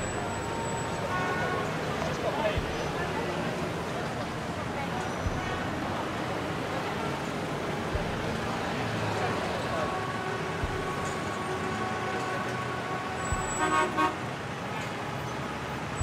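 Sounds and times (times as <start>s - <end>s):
indistinct voices: 0.0s - 14.0s
faint steady tones: 0.0s - 14.2s
traffic noise: 0.0s - 16.0s
soft low bumps: 1.5s - 11.4s, 13.2s - 14.0s.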